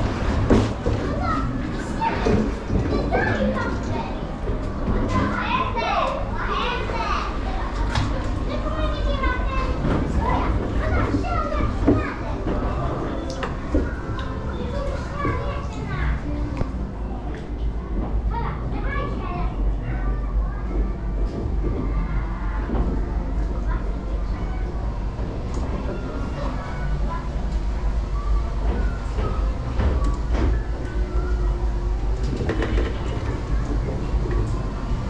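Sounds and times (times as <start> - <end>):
children talking and calling out: 0.0 - 35.0.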